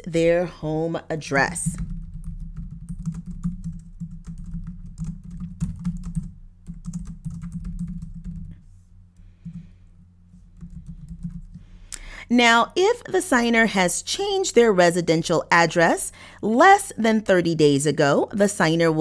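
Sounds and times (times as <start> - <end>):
low hum: 0.0 - 16.4
computer keyboard typing: 1.7 - 8.5, 10.6 - 11.6.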